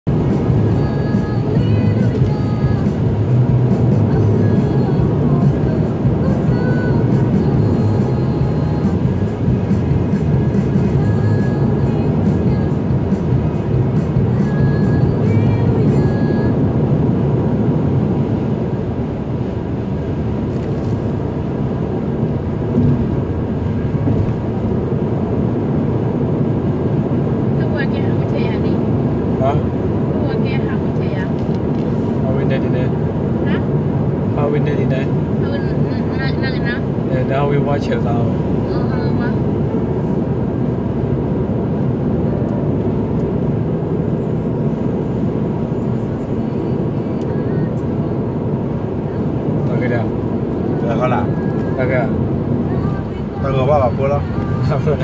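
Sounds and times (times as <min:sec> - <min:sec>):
road and tyre noise in car: 0:00.0 - 0:55.0.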